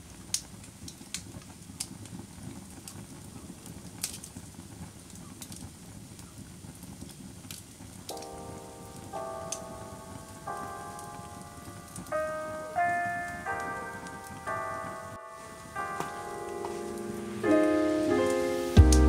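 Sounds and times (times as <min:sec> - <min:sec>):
wood fire crackling: 0:00.0 - 0:19.0
slow soft keyboard music: 0:08.1 - 0:19.0.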